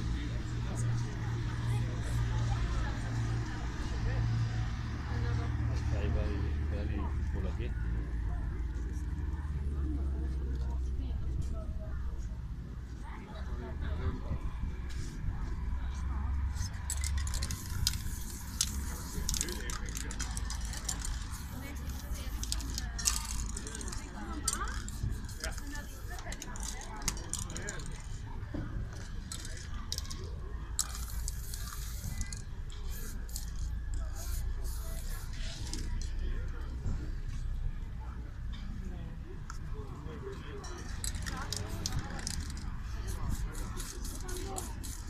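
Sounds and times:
spray cans rattling and clinking: 16.8 - 28.0, 29.0 - 35.5, 40.7 - 45.0
spray can hissing: 16.9 - 23.9, 30.8 - 35.4, 41.2 - 45.0.

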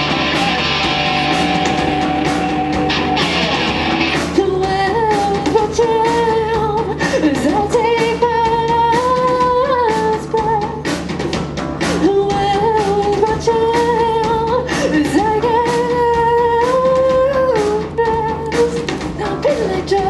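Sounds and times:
electric guitars: 0.0 - 8.3
drum kit: 0.0 - 20.0
woman singing: 4.3 - 10.9, 12.0 - 20.0.

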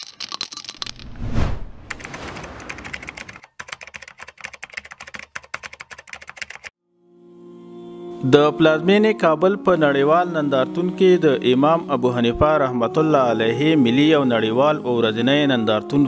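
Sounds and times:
whoosh: 1.0 - 3.4
music: 6.8 - 16.0.

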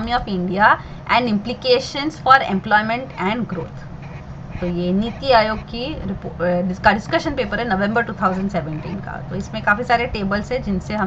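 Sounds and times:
woman hesitating vocal sound: 4.6 - 6.2.

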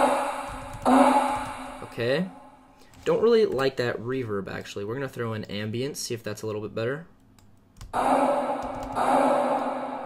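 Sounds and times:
sung vocal note with reverb: 0.0 - 2.6.

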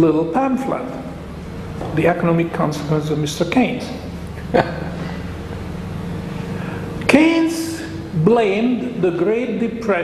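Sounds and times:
low rumbling room hum: 0.0 - 10.0.

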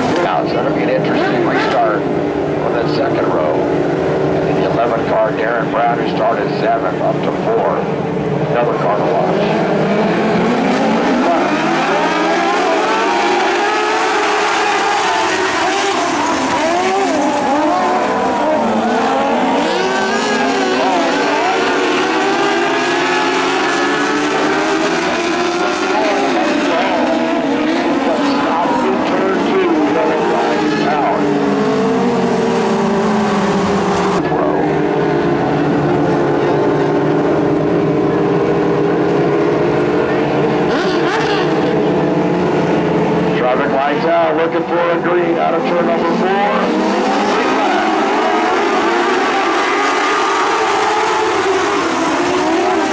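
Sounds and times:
race car engines revving: 0.0 - 52.9.

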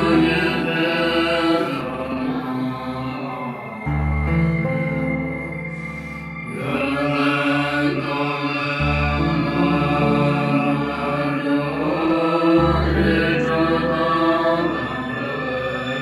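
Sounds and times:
voices chanting: 5.9 - 16.0.

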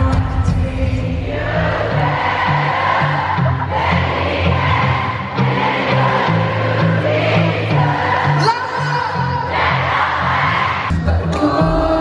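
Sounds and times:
live rock band music: 0.0 - 9.4
crowd cheering and screaming: 1.3 - 12.0.

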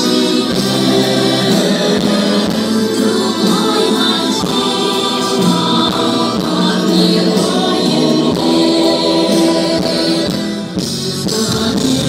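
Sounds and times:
choir singing with instruments: 0.0 - 12.0.

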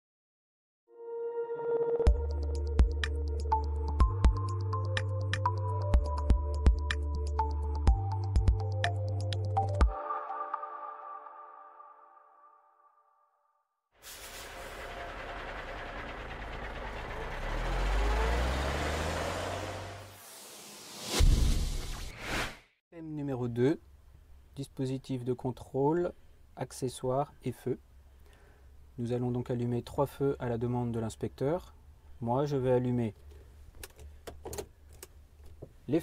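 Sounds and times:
vehicle engine rumble: 14.0 - 20.7
whoosh: 19.4 - 22.7
loud low thump: 21.2 - 22.1.

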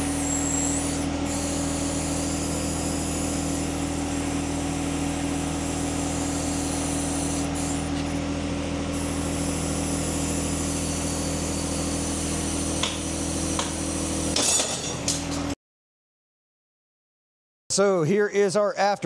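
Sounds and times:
machine hum: 0.0 - 14.4.

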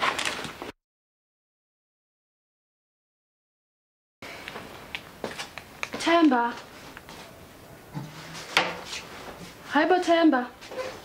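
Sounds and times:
person speaking: 5.9 - 6.7.

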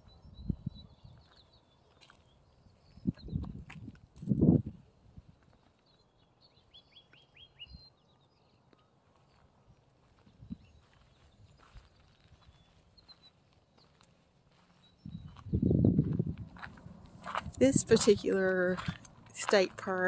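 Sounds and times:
steps on dirt trail: 1.1 - 4.4, 8.7 - 20.0
faint bird chirps: 5.6 - 9.5, 10.5 - 15.9.

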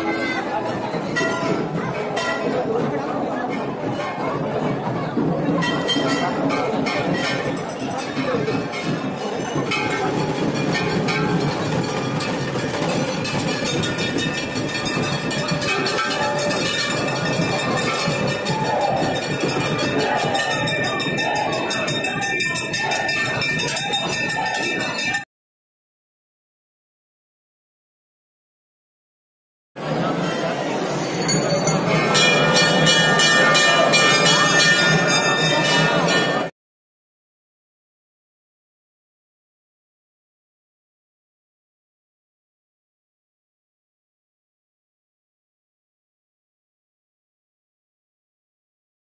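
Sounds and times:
dense crowd din: 0.0 - 25.3, 29.8 - 36.5
temple bells clanging: 5.5 - 25.2, 30.0 - 36.5.

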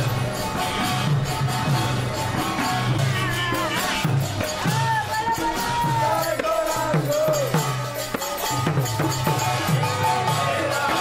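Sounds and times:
drum beats: 0.0 - 11.0
hand cymbals struck: 0.0 - 11.0
person singing: 9.4 - 11.0.

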